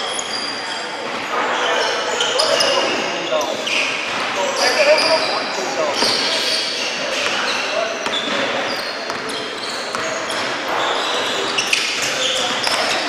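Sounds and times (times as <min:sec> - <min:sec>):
echoing voices: 0:00.0 - 0:13.0
sneakers squeaking on floor: 0:00.0 - 0:13.0
basketball bouncing: 0:04.1 - 0:05.3, 0:05.9 - 0:06.3, 0:07.2 - 0:10.9.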